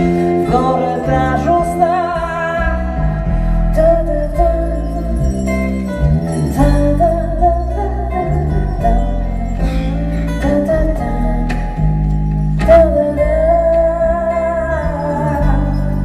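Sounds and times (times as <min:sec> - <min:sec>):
woman singing: 0:00.0 - 0:05.8, 0:06.6 - 0:16.0
low bass line: 0:00.0 - 0:16.0
ringing chimes and bells: 0:04.2 - 0:10.2.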